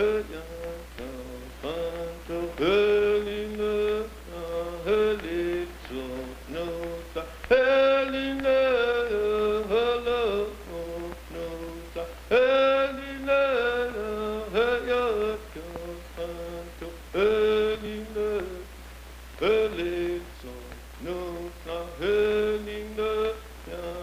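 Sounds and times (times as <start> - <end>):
chanted singing: 0.0 - 18.7
steady low hum: 0.0 - 24.0.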